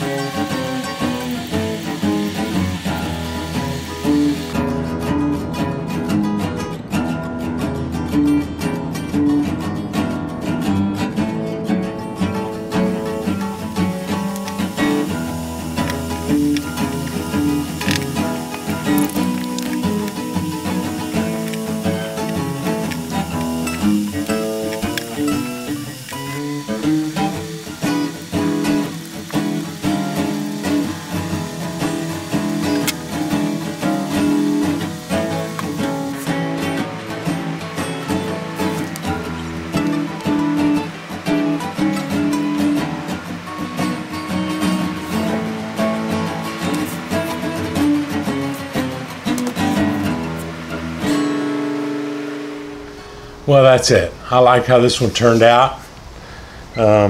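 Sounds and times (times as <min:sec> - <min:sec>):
acoustic guitar playing blues: 0:00.0 - 0:57.0.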